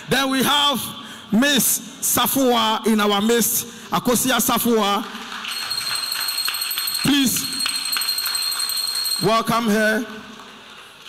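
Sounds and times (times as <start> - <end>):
rattling shaker percussion: 5.4 - 9.3.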